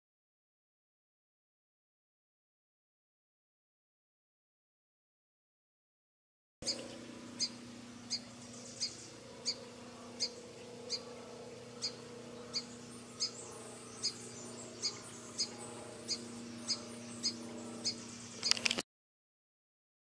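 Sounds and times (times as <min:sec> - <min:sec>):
bird chirping: 0:06.6 - 0:18.8
faint steady hum: 0:06.6 - 0:18.8.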